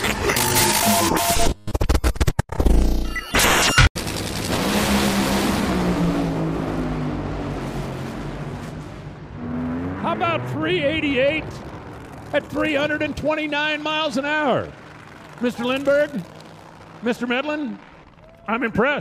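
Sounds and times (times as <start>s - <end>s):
drag racing engines roaring: 4.0s - 19.0s.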